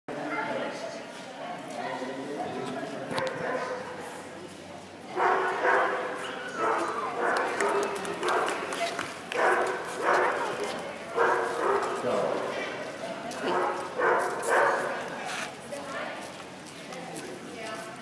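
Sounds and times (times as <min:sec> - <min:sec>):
people talking: 0:00.1 - 0:18.0
dog barking: 0:03.1 - 0:04.0, 0:05.2 - 0:12.0, 0:13.4 - 0:15.0.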